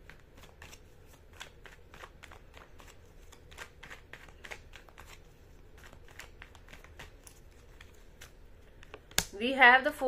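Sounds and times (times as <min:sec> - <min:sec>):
cards being shuffled: 0:00.0 - 0:09.3.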